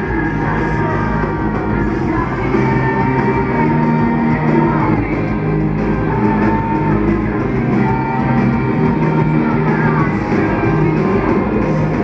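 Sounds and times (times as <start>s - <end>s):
live rock band through pa: 0.0s - 12.0s.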